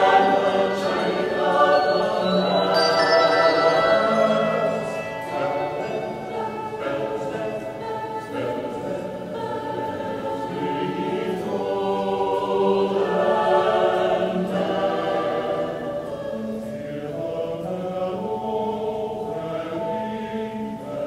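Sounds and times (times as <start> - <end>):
mixed choir singing: 0.0 - 21.0
handbells ringing: 1.4 - 7.9.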